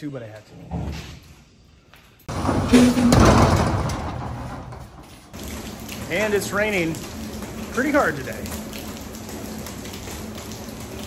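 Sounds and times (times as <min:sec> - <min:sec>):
heavy rain falling: 0:02.3 - 0:11.0.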